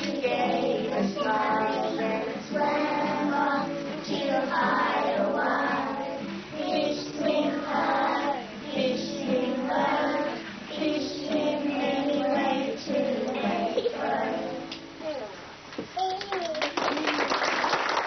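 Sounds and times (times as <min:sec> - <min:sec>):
strummed classical guitar: 0:00.0 - 0:07.8
children singing: 0:00.0 - 0:14.7.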